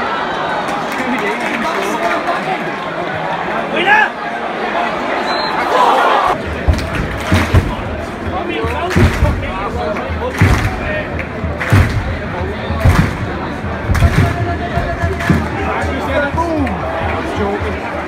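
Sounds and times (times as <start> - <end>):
stadium crowd voices and shouts: 0.0 - 18.0
short thumps: 11.6 - 16.0.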